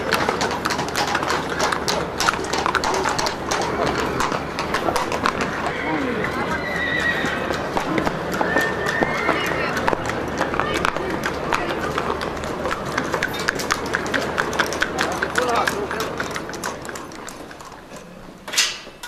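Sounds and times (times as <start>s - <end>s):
murmur of people talking: 0.0s - 18.6s
horse hooves clip-clopping: 0.0s - 19.0s
horse whinnying: 3.3s - 10.9s.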